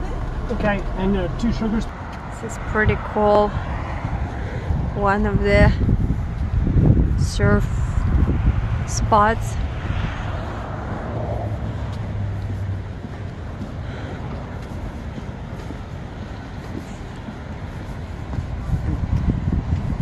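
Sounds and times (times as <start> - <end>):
coastal ambient roar: 0.0 - 20.0.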